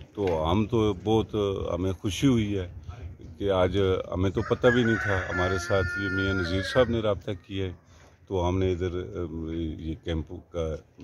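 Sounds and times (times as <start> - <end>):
man talking: 0.0 - 11.0
rooster crowing: 4.4 - 6.9.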